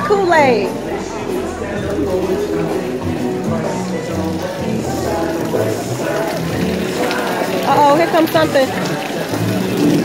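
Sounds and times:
music with stepping bass line: 0.0s - 8.0s.

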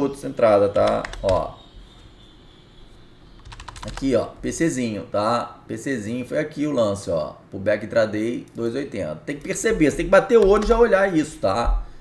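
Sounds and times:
low room hum: 0.0s - 12.0s
keyboard keystrokes: 0.8s - 1.5s, 3.4s - 4.1s, 10.3s - 10.8s.

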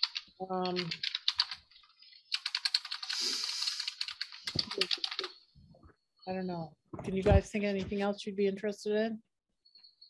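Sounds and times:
fast keyboard typing: 0.0s - 5.4s.

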